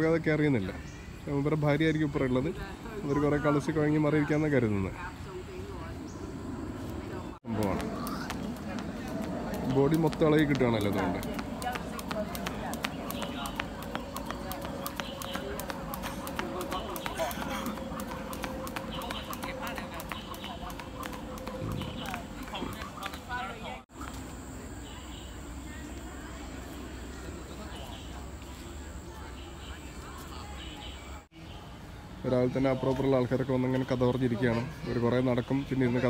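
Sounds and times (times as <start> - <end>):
distant voices: 2.6 - 36.0
skipping rope slapping on pavement: 7.5 - 24.2.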